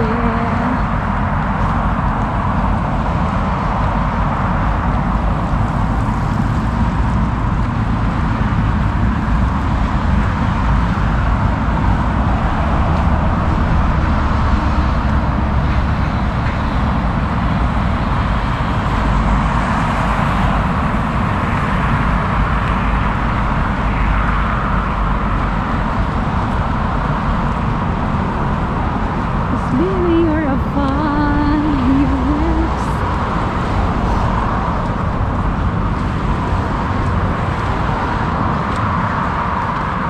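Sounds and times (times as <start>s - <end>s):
road traffic rumble: 0.0s - 40.0s.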